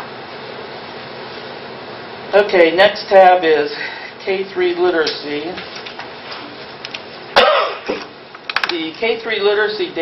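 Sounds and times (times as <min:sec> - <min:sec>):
person coughing: 0:07.4 - 0:08.1.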